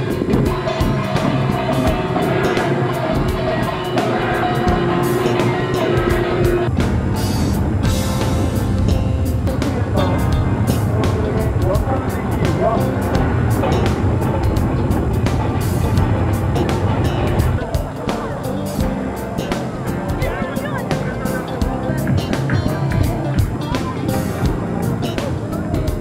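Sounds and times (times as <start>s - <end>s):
drums: 0.0s - 26.0s.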